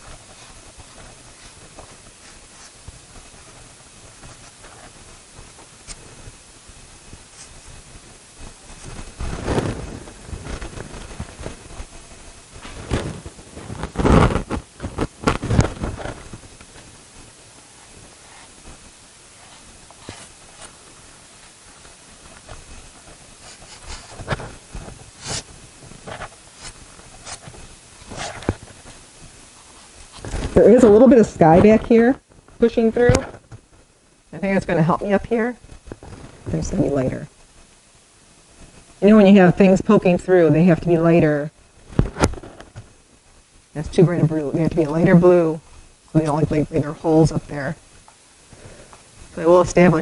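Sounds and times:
faint hiss: 0:00.0 - 0:50.0
pastel scratching on paper: 0:23.1 - 0:24.2, 0:25.2 - 0:25.5.

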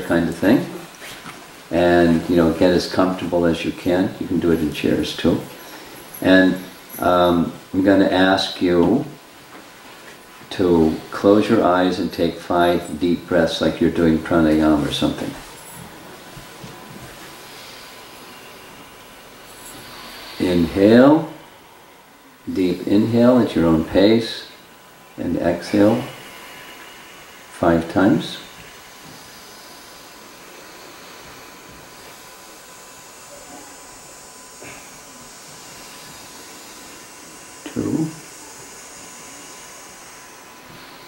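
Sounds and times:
steady hiss: 0:00.0 - 0:41.0.

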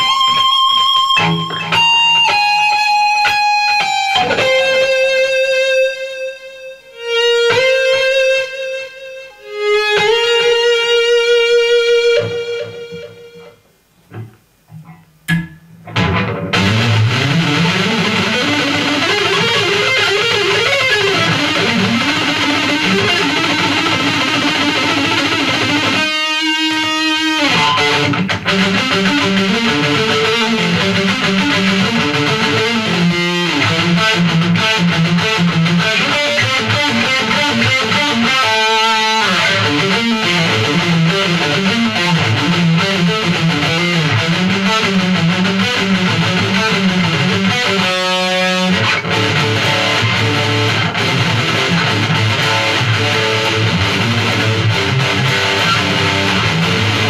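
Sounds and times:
distorted electric guitar lead: 0:00.0 - 0:57.0.

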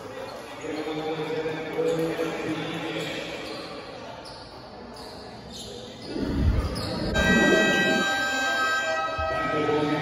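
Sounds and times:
scoreboard buzzer: 0:07.2 - 0:10.0.

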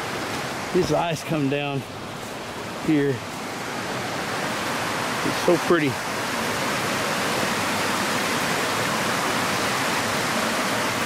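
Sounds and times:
creek water rushing over rocks: 0:00.0 - 0:11.0.

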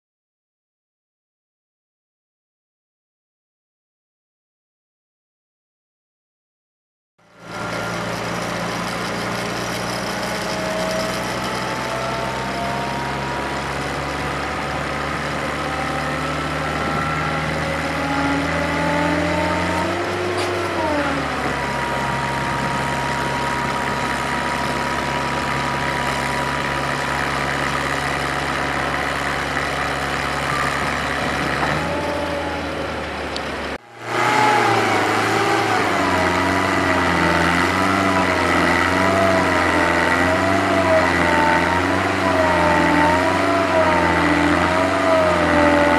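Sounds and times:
gas engine running: 0:07.3 - 0:45.9
high machine whine: 0:07.3 - 0:45.9.

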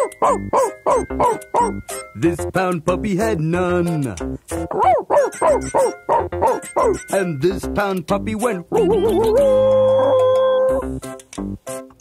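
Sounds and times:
dog-like yips: 0:00.0 - 0:01.8, 0:04.7 - 0:07.0, 0:08.9 - 0:10.8
bouncy children's music: 0:00.0 - 0:12.0.

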